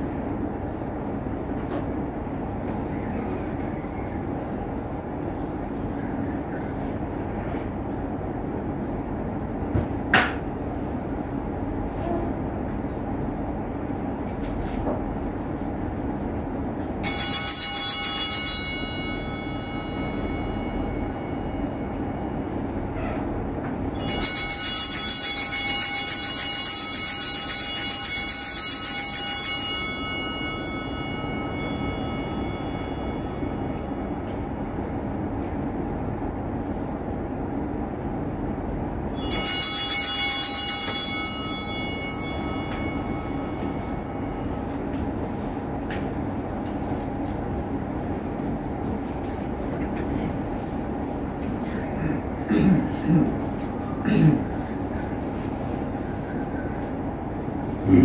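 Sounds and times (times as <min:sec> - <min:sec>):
altar bells ringing: 0:16.7 - 0:35.4, 0:39.1 - 0:47.3.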